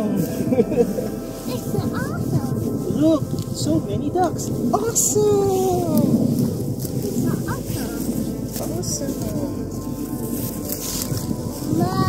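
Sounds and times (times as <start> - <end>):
person laughing: 0.3 - 1.1.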